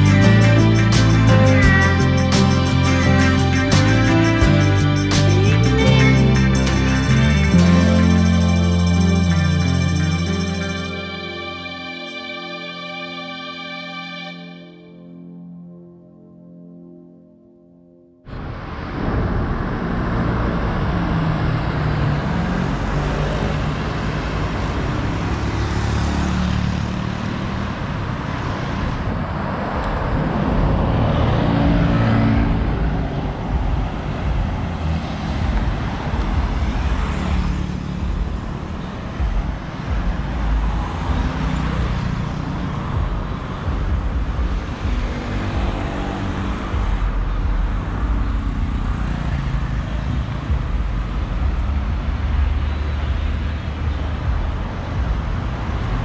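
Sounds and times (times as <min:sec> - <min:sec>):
cars and motorbikes passing: 0:18.3 - 0:56.0
low road noise rumble: 0:18.3 - 0:56.0.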